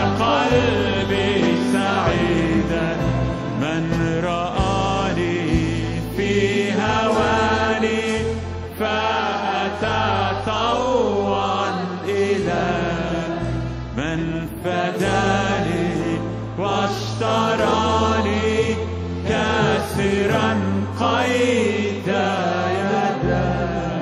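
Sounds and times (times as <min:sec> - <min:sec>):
group singing a hymn: 0:00.0 - 0:24.0.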